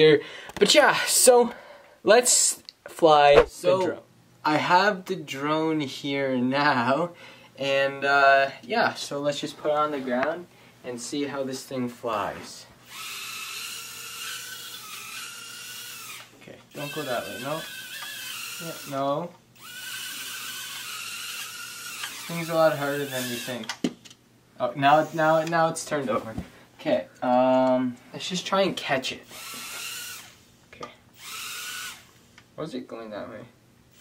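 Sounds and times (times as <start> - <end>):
drone motors high whine: 12.9 - 19.0.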